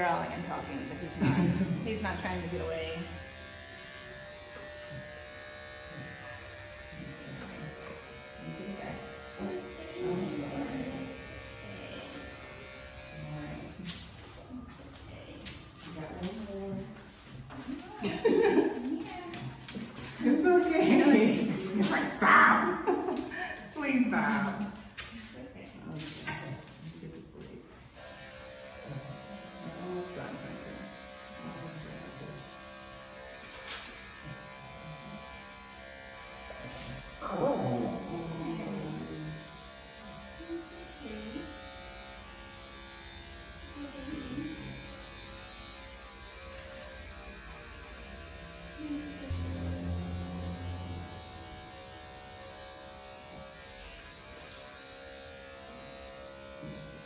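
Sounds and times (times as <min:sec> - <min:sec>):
electric clippers running: 0:00.0 - 0:25.0, 0:27.9 - 0:57.0
short pitched sounds: 0:49.3 - 0:52.2.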